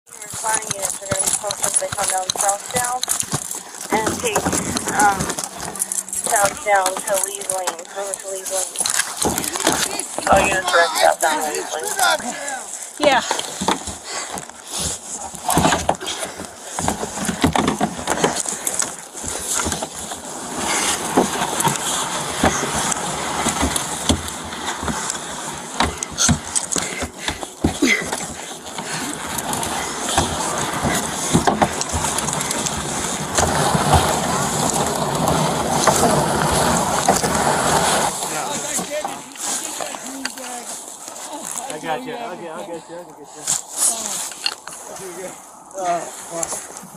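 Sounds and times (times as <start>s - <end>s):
kayak hull scraping across ice: 0.1s - 46.9s.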